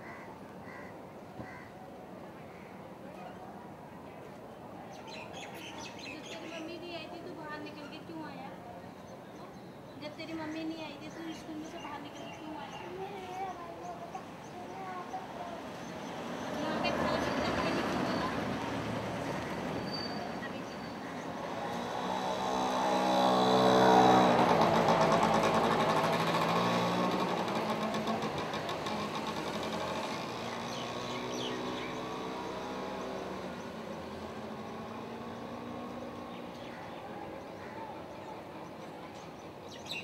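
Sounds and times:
vehicle driving past: 16.0 - 36.7.

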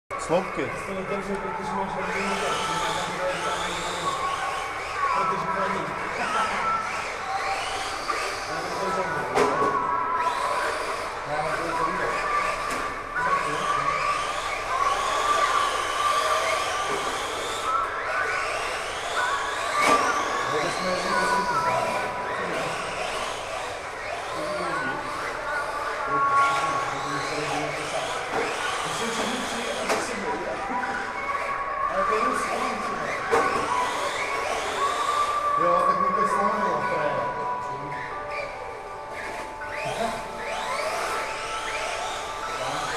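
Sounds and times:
rc car motors whining: 0.1 - 42.9.

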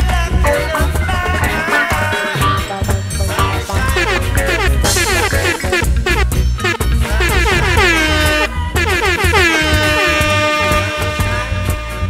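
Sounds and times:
music with bass beat: 0.0 - 12.0
air horn blasts: 3.8 - 12.0.

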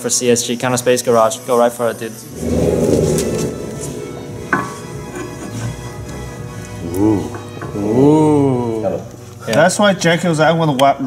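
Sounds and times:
background music: 2.2 - 10.2
rustling noise: 2.3 - 4.9.

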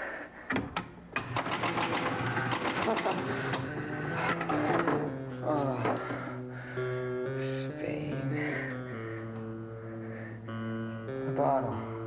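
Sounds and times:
pinball flippers clicking and clattering: 0.5 - 5.2.

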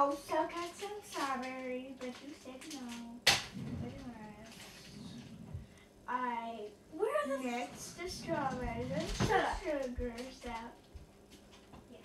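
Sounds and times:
voices talking: 0.0 - 10.8.

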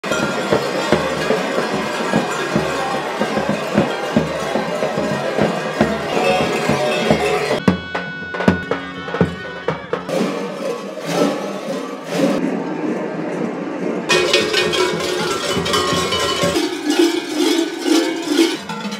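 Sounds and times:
large costume bells clanging: 0.0 - 12.0, 14.1 - 18.9
large drum strokes: 0.0 - 12.4, 14.1 - 18.9.

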